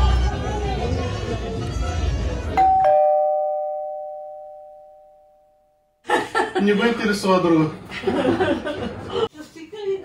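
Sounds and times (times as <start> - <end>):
two-note doorbell chime: 2.6 - 5.8.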